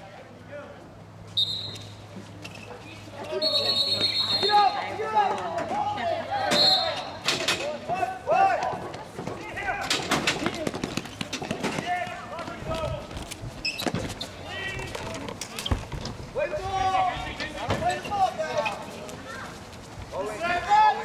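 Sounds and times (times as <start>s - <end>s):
referee's whistle: 1.4s - 2.0s, 3.3s - 4.9s, 6.5s - 7.1s.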